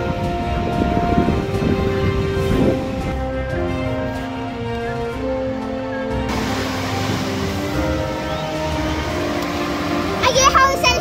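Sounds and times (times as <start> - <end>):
music with long held notes: 0.0 - 11.0
wind and surf rushing: 0.0 - 11.0
child speaking: 10.2 - 11.0.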